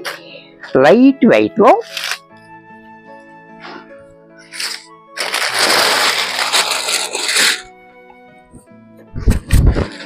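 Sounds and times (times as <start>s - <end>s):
background music: 0.0s - 10.0s
fabric rustling: 4.4s - 7.6s.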